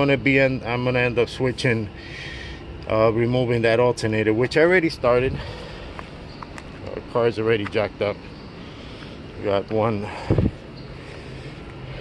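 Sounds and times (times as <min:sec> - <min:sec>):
low outdoor background rumble: 0:00.0 - 0:12.0.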